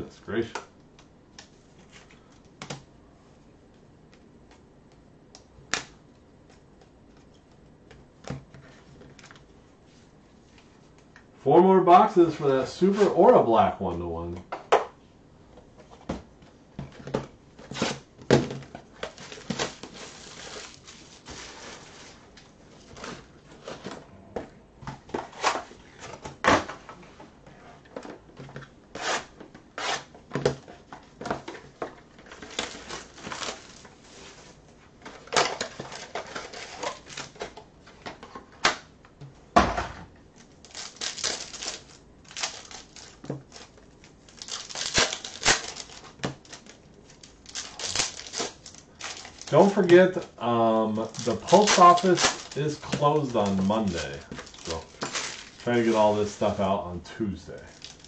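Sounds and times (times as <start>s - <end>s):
foil wrappers tearing and crinkling: 19.1s - 22.2s, 32.2s - 33.9s, 40.6s - 50.2s, 51.0s - 56.6s, 57.6s - 58.0s
thump on table: 39.6s - 40.1s.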